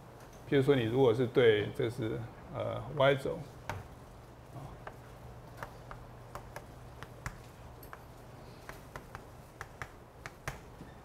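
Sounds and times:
chalk tapping on a blackboard: 0:05.6 - 0:10.8.

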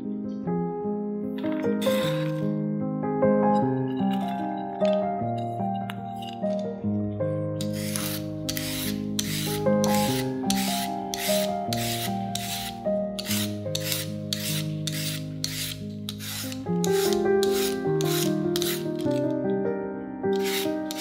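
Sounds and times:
background music: 0:00.0 - 0:21.0
rhythmic rasping scrapes: 0:07.6 - 0:19.3, 0:20.4 - 0:21.0.

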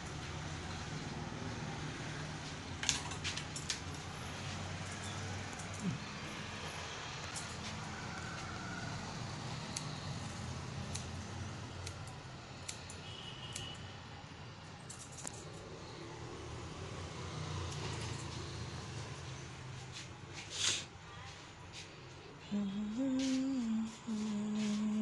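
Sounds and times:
scissors snipping hair: 0:04.8 - 0:06.1, 0:09.7 - 0:13.9.

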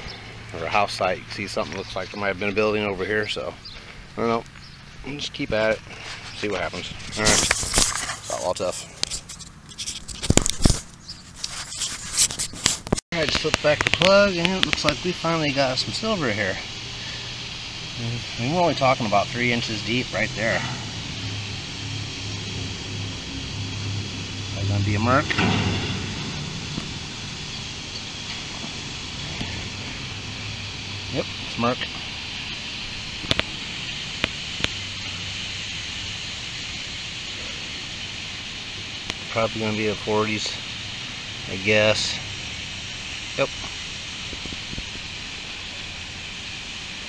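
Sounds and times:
scraping and rustling: 0:05.7 - 0:14.9
low even hum: 0:13.2 - 0:46.6
sharp knocks: 0:24.6 - 0:30.1.

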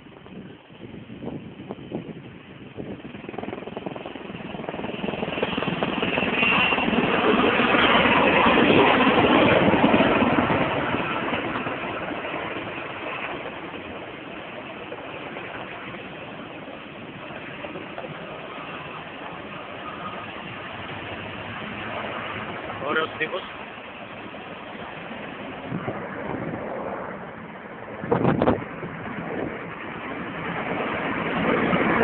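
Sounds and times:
helicopter passing overhead: 0:00.0 - 0:32.0.

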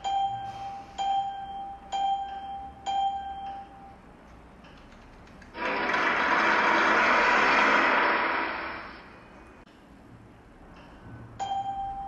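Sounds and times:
loud even rushing noise: 0:05.6 - 0:09.3.

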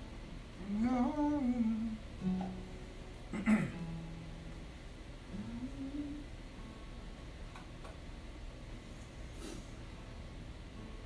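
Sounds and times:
quiet room noise: 0:00.0 - 0:11.0
person humming: 0:00.6 - 0:02.0, 0:05.3 - 0:06.3.

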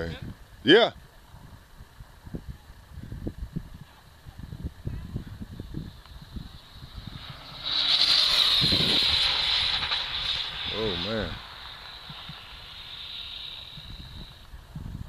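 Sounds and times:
wind buffeting microphone: 0:01.3 - 0:15.0
rc car motor whine: 0:04.6 - 0:15.0
tyre hiss: 0:05.8 - 0:14.6.

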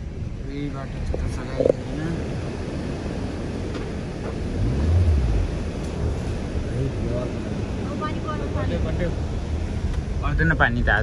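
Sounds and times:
car driving on gravel road: 0:00.0 - 0:11.0
rumble of tyres and engine: 0:00.0 - 0:11.0.

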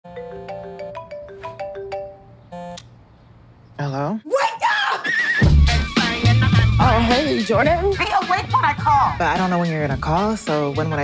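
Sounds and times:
phone ringtone melody: 0:00.1 - 0:02.8.

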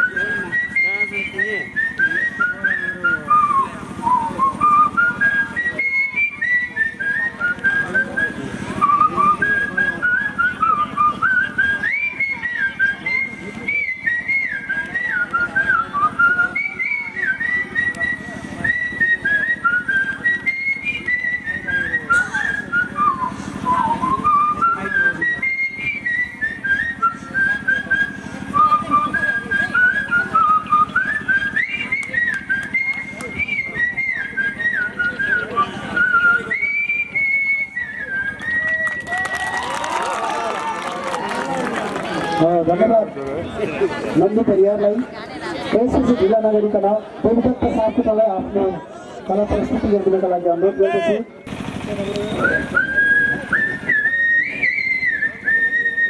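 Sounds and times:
man whistling a folk melody: 0:00.0 - 0:39.4, 0:52.0 - 0:56.0.

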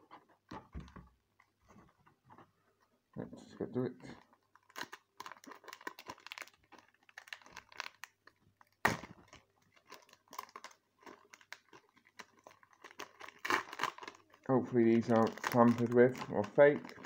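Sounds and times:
foil wrapper crinkling: 0:04.1 - 0:17.0.

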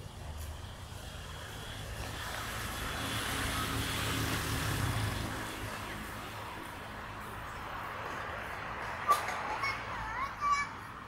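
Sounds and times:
low traffic hum: 0:00.0 - 0:11.0
road vehicle passing: 0:00.0 - 0:11.0.

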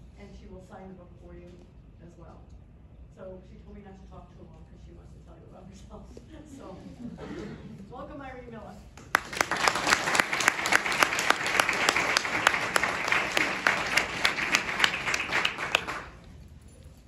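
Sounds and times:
audience applauding: 0:09.0 - 0:16.2.

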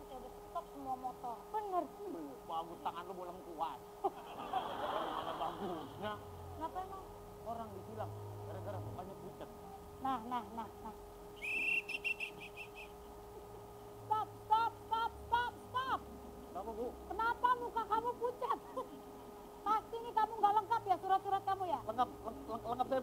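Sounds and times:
faint steady hum: 0:00.0 - 0:23.0
police whistle trill: 0:11.4 - 0:12.9
high-pitched chirps: 0:11.4 - 0:13.0.

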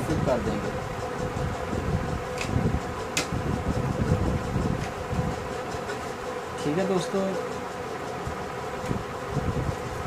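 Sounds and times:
steady buzzing hum: 0:00.0 - 0:10.0.

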